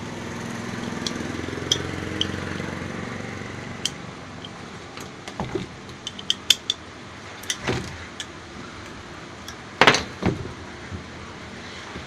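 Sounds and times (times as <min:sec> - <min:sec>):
motor low rattling hum: 0:00.0 - 0:12.0
light metal clicks: 0:00.8 - 0:02.8, 0:03.8 - 0:05.2, 0:05.9 - 0:06.8, 0:07.4 - 0:09.6.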